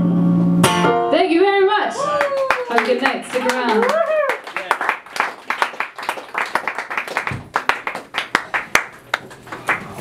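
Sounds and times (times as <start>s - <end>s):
audience clapping: 2.1s - 10.0s.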